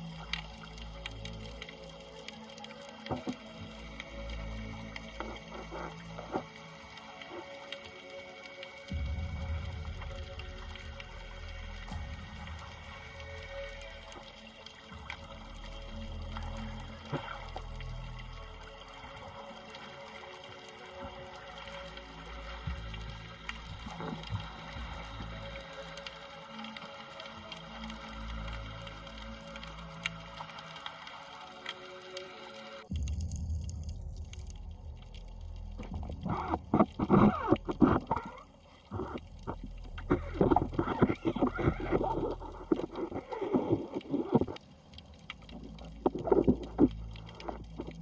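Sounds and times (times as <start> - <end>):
background music: 0.0 - 48.0
underwater water sloshing and bubbling: 0.0 - 48.0.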